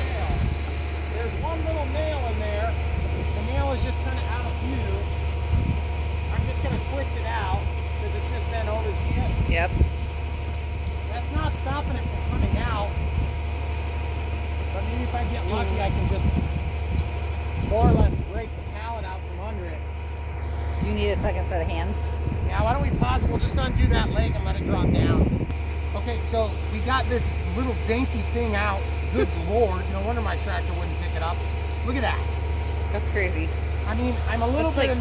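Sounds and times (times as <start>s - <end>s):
low machine hum: 0.0s - 35.0s.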